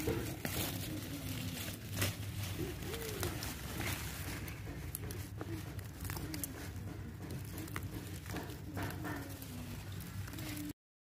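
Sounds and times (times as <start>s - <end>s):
dove cooing: 0.0s - 10.7s.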